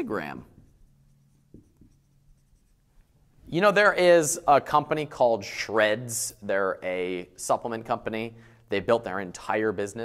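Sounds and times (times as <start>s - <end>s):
marker writing on whiteboard: 0.0s - 3.2s
low room hum: 0.0s - 10.0s.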